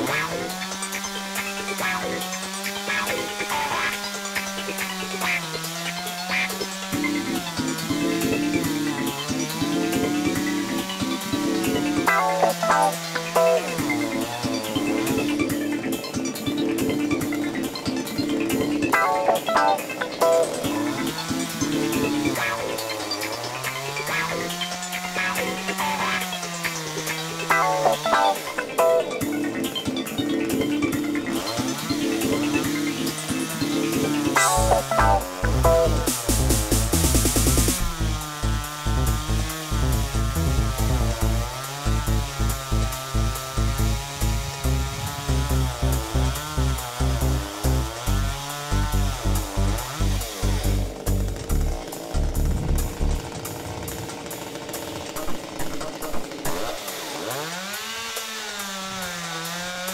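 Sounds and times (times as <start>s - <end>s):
background music with steady beat: 0.0s - 23.0s, 25.1s - 53.0s.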